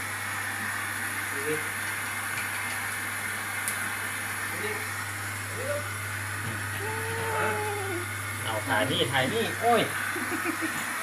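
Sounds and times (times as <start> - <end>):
dog whining: 6.7 - 8.0.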